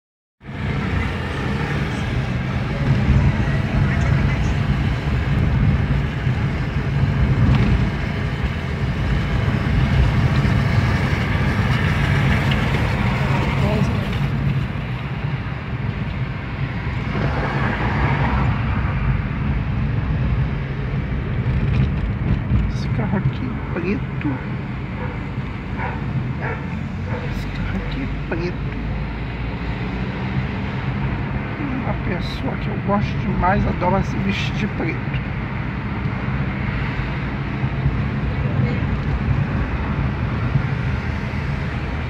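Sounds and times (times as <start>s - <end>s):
car engine and road noise: 0.4s - 42.0s.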